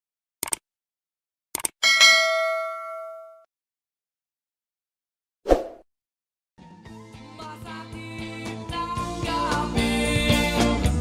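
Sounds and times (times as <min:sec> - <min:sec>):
metallic bell ding: 0:01.8 - 0:03.5.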